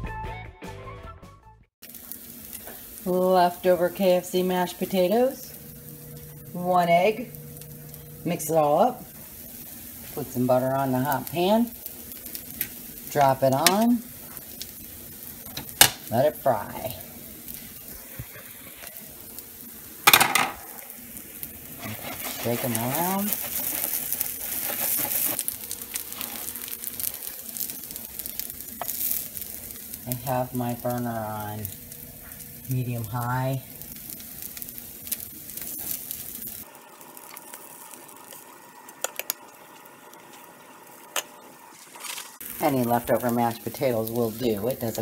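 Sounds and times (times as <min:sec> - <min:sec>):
pancakes sizzling in a pan: 0:01.8 - 0:45.0
utensil clicking in a pan: 0:12.6 - 0:13.9, 0:38.2 - 0:40.4.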